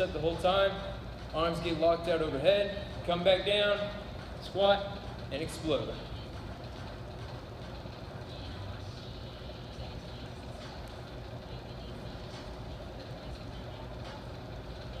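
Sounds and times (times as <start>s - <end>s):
low machinery rumble: 0.0s - 15.0s.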